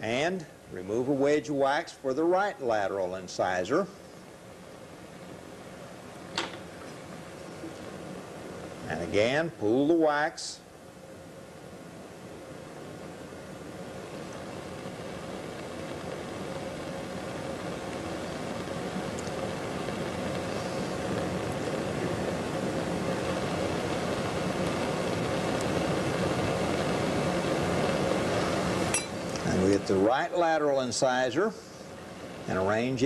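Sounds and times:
faint hum: 0.0 - 33.0.

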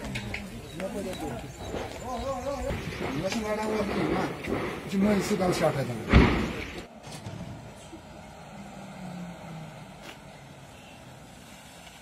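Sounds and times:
outdoor noise: 0.0 - 12.0.

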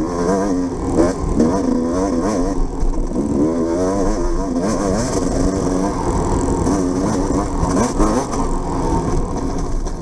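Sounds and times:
dirt bike engine revving: 0.0 - 10.0.

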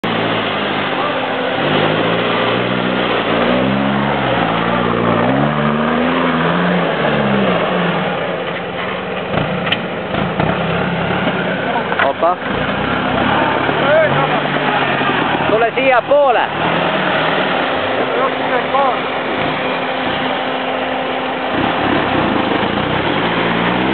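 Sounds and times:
constant noisy background: 0.0 - 23.9
off-road vehicle engine revving: 0.0 - 23.9.

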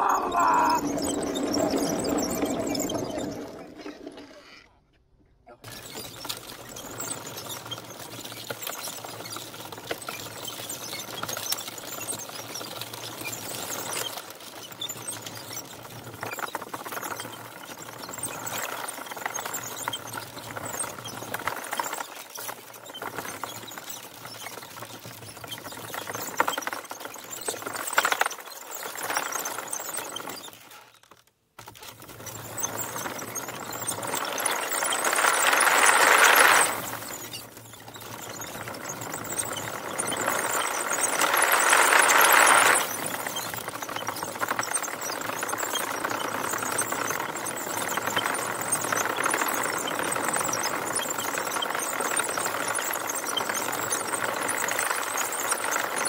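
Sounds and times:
wooden tracks rattling: 0.0 - 4.6, 31.6 - 56.0.

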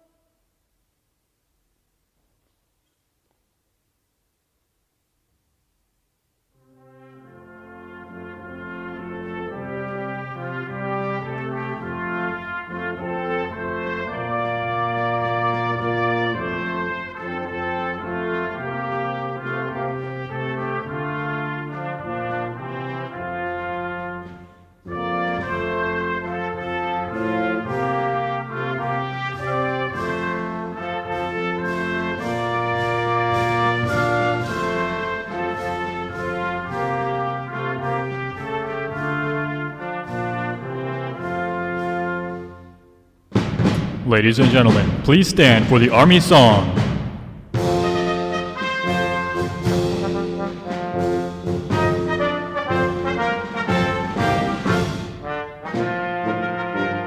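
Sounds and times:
military brass band playing: 6.6 - 57.0.

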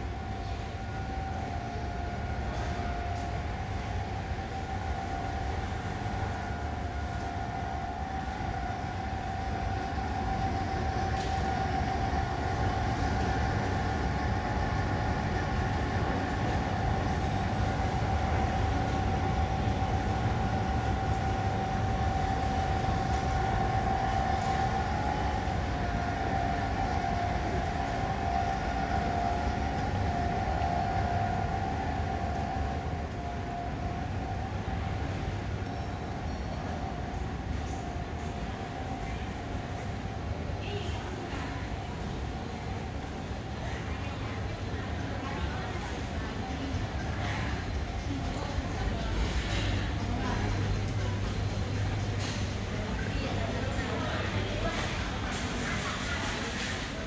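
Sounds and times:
mechanical hum with high tone: 0.0 - 57.0.

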